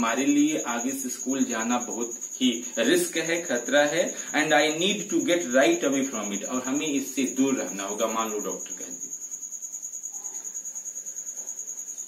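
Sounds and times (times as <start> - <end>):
cricket chirping: 0.0 - 12.0.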